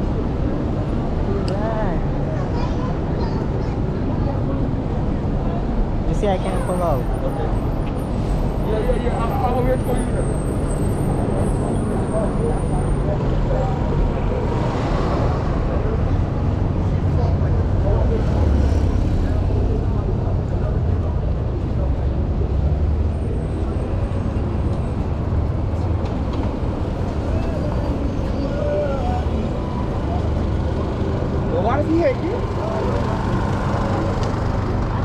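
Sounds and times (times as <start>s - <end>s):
passersby talking: 0.0s - 35.0s
traffic rumble: 0.0s - 35.0s.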